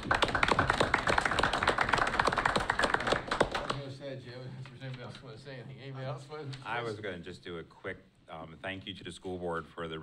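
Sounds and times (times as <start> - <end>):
people applauding: 0.0 - 3.8.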